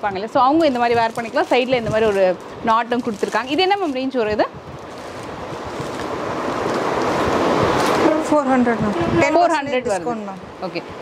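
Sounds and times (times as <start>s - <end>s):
cotton fabric rustling: 0.2s - 8.4s.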